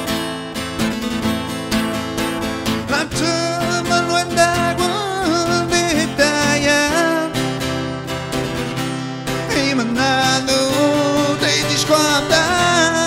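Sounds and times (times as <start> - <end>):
strummed acoustic guitar: 0.0 - 13.0
man singing: 2.7 - 7.9, 9.3 - 13.0.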